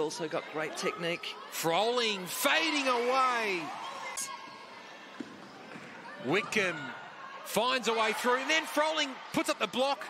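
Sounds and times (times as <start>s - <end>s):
faint arena noise: 0.0s - 10.0s.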